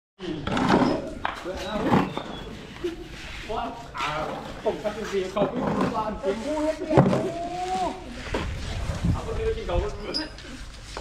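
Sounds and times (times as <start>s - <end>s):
people talking: 0.2s - 2.2s, 2.8s - 10.6s.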